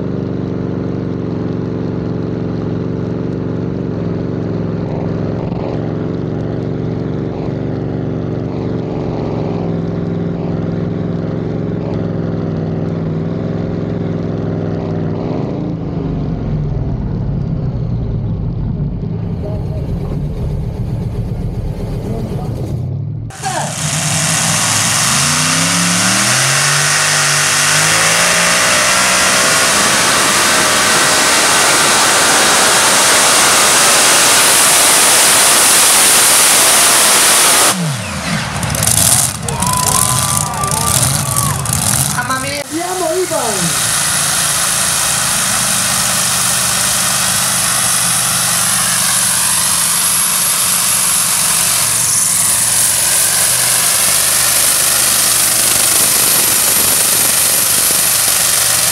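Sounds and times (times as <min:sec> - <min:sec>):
tractor engine roaring: 0:00.0 - 0:58.9
falling glide tone: 0:37.7 - 0:58.5.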